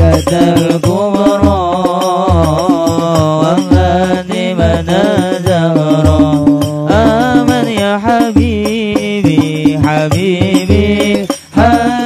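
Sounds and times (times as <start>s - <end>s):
deep drum beats: 0.0s - 12.0s
man chanting through pa: 0.0s - 12.0s
sharp drum strokes: 0.0s - 12.0s.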